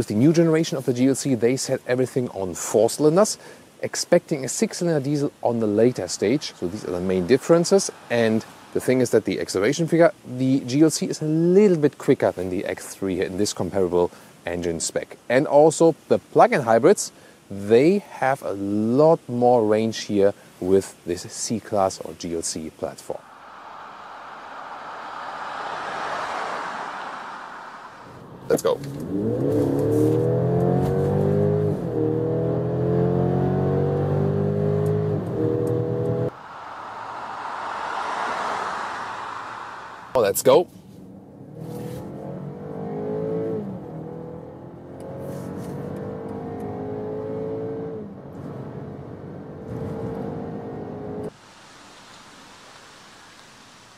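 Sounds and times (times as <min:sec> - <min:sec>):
car tyre and road noise: 0:00.0 - 0:11.3, 0:22.3 - 0:53.9
faint hiss: 0:00.0 - 0:30.1, 0:36.3 - 0:41.0, 0:51.3 - 0:53.9.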